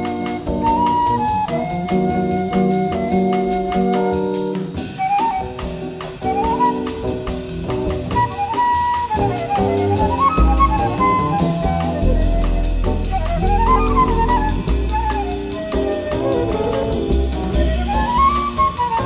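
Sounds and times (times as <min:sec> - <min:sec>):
drums with cymbal strokes: 0:00.0 - 0:19.0
flute melody: 0:00.0 - 0:19.0
upright bass: 0:09.5 - 0:19.0.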